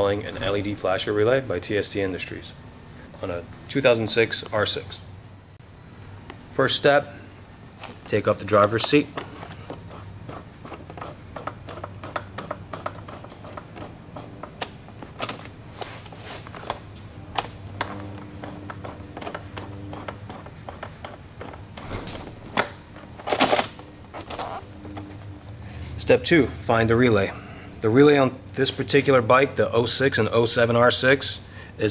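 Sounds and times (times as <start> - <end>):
seat rustling: 13.8 - 17.0.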